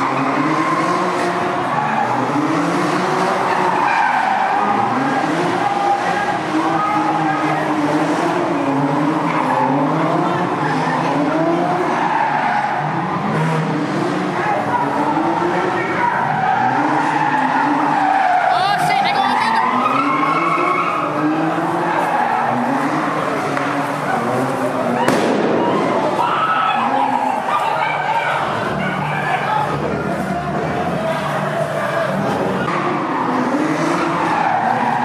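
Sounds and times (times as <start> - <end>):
tyres squealing: 0.0 - 13.5, 14.2 - 35.0
car engine revving: 0.0 - 35.0.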